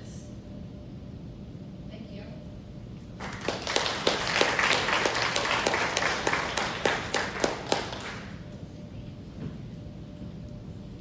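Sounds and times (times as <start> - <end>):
small audience applauding: 3.2 - 8.4.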